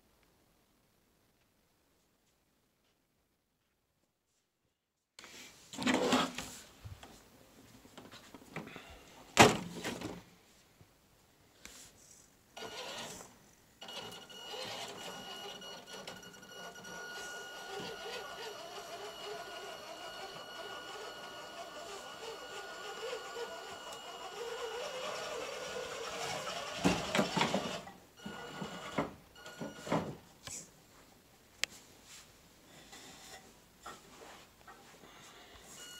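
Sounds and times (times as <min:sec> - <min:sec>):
electric motor whine: 0:17.2 - 0:27.8.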